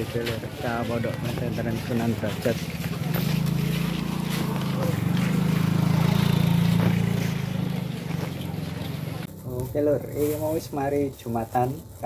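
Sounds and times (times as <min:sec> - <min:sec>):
motorcycle engine passing by: 0:00.7 - 0:09.4.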